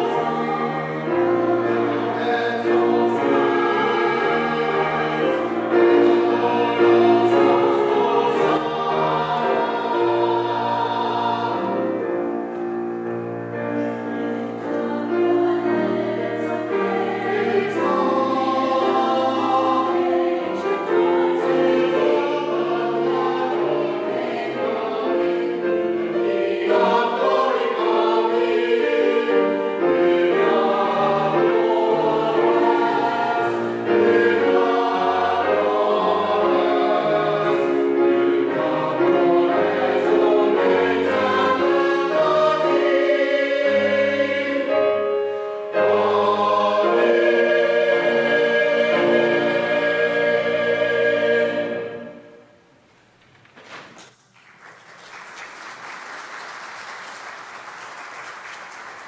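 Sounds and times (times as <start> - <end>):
choir singing: 0.0 - 52.7.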